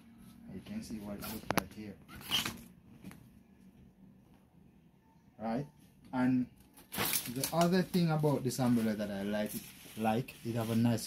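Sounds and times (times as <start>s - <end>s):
umbrella fabric rustling: 6.9s - 11.0s.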